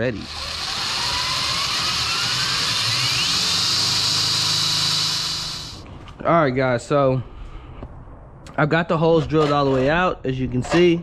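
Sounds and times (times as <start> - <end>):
electric drill boring sheet metal: 0.0 - 5.8.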